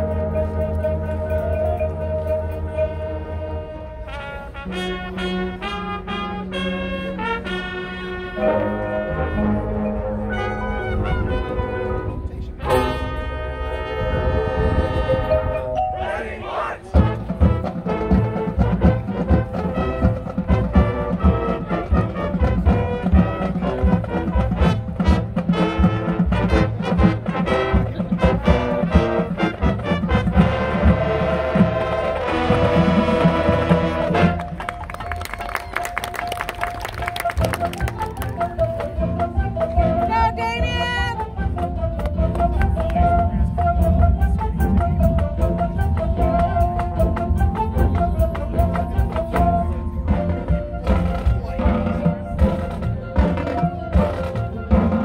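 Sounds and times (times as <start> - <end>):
sustained brass chords: 0.0 - 34.9
marching percussion strokes: 0.0 - 55.0.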